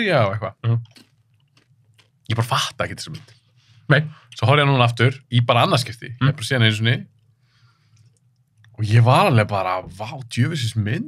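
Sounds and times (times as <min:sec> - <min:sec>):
man's voice: 0:00.0 - 0:00.8, 0:08.8 - 0:11.0
low steady hum: 0:00.0 - 0:11.0.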